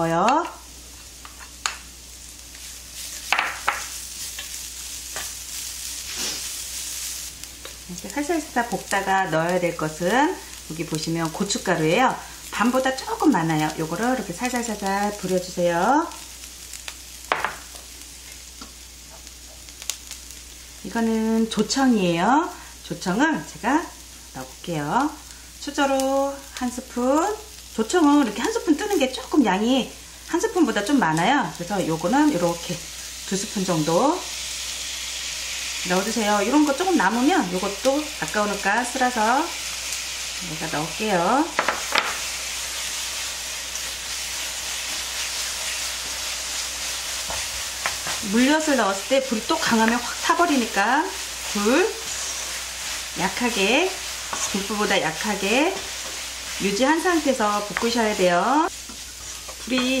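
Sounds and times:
fish sizzling in oil: 0.0 - 60.0.

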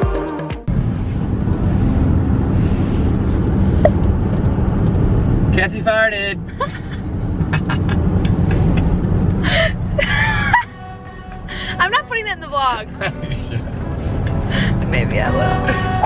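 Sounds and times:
car cabin road rumble: 0.7 - 16.0.

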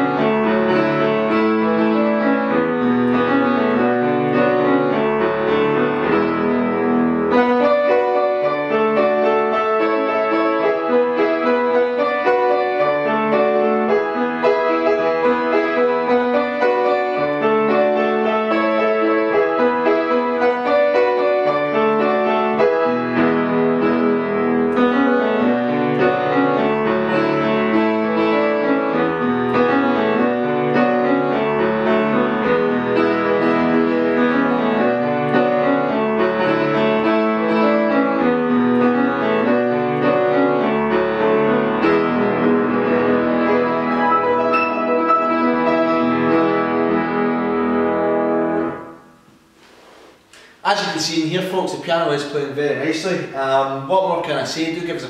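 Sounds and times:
grand piano playing chords: 0.0 - 55.0.

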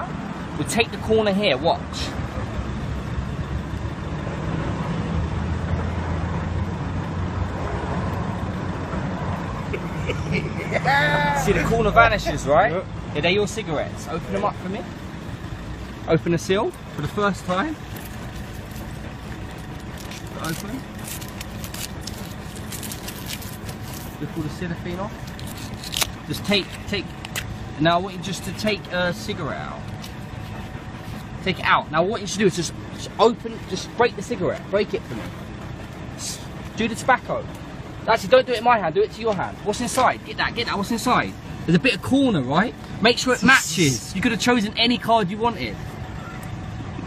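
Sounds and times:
street traffic: 0.0 - 47.0
vehicle engine droning: 0.0 - 47.0
low background rumble: 8.3 - 47.0
cellophane crinkling: 19.8 - 24.2.

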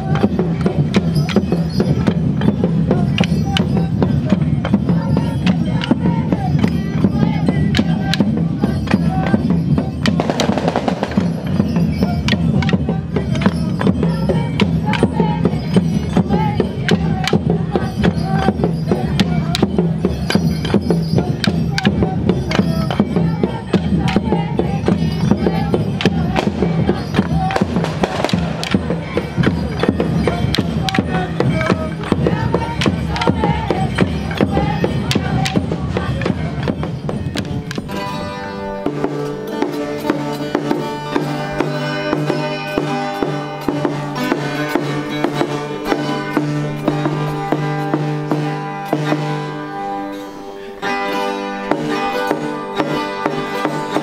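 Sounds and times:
rattles and percussion: 0.0 - 54.0
voices: 0.0 - 54.0.

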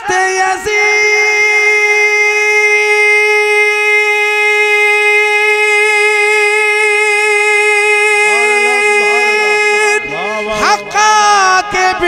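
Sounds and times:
man singing through loudspeakers: 0.0 - 12.0.

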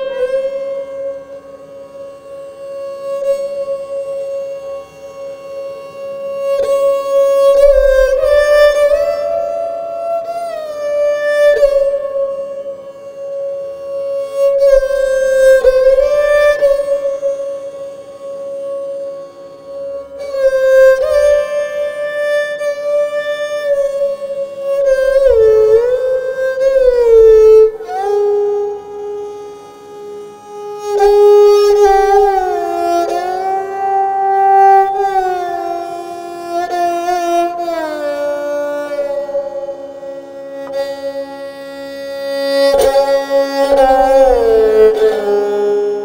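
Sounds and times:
bowed string instrument: 0.0 - 46.0.

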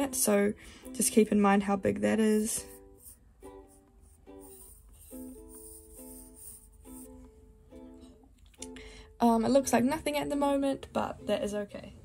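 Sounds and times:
plucked string music: 0.0 - 12.0.

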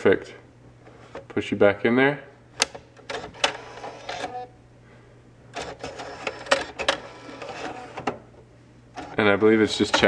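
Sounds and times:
cd changer whirring and clicking: 2.6 - 4.6, 5.5 - 10.0.

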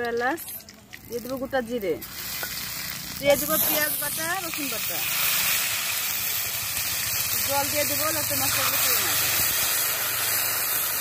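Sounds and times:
spices sizzling in hot oil: 0.0 - 11.0.

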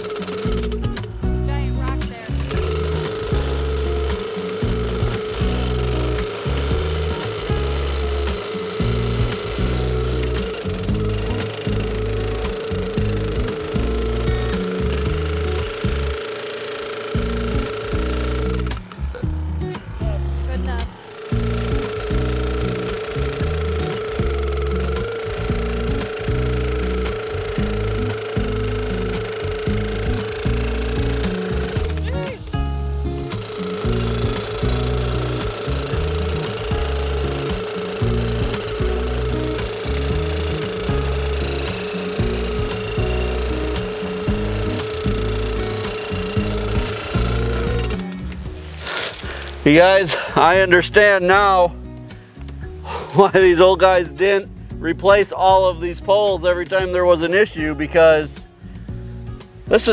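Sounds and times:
post driver pounding: 0.0 - 1.4, 2.1 - 50.6
post driver engine: 0.0 - 59.9.

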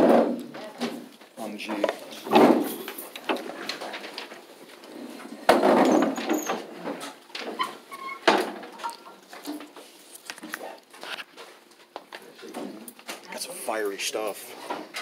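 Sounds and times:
chairs and desks clattering: 0.0 - 13.2.

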